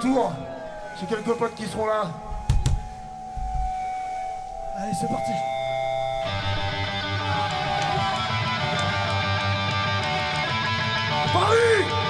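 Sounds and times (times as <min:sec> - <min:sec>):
guitar amplifier ringing tone: 0:00.0 - 0:11.2.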